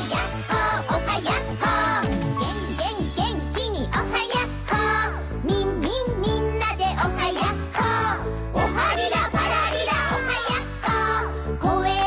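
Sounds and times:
bouncy children's theme song: 0.0s - 12.0s.

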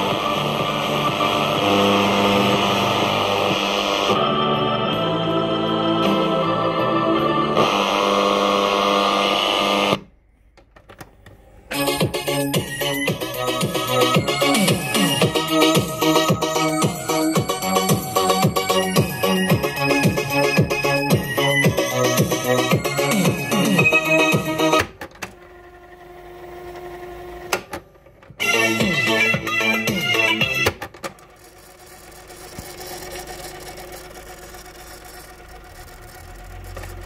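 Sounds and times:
tape fast-winding whine: 0.0s - 10.1s, 11.7s - 30.7s, 31.4s - 37.0s
radio music with long held tones: 0.0s - 10.2s.

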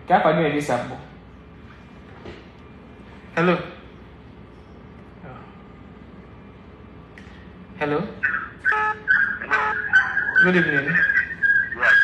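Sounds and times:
pulsing high whistling tone: 8.2s - 12.0s.

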